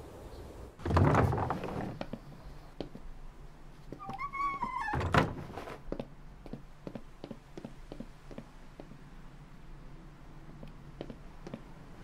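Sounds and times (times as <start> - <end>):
wooden door moving: 0.8 - 2.2, 3.9 - 5.8.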